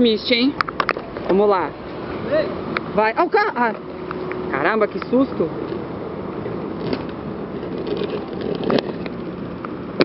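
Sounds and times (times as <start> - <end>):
car passing: 0.0 - 10.0
street traffic: 0.0 - 10.0.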